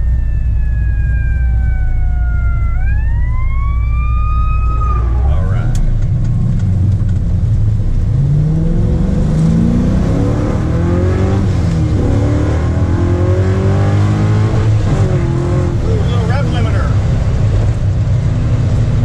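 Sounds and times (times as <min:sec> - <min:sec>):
high whine: 0:00.0 - 0:17.1
car engine revving: 0:00.0 - 0:19.0.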